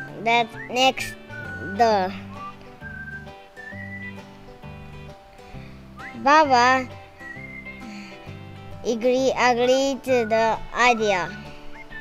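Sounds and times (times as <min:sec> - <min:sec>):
thin whistle-like melody: 0:00.0 - 0:04.3, 0:05.9 - 0:06.6, 0:07.2 - 0:08.3, 0:10.0 - 0:12.0
background music with held chords: 0:00.0 - 0:12.0.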